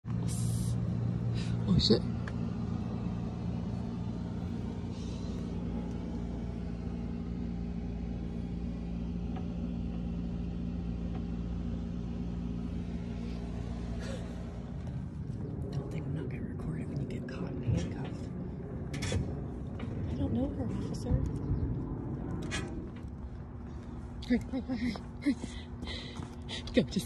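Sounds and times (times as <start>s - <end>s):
idling motor hum: 0.0s - 27.0s.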